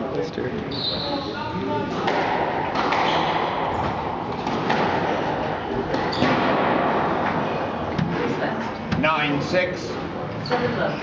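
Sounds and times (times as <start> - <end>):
murmur of spectators: 0.0 - 11.0
squash ball knocks: 2.0 - 5.2.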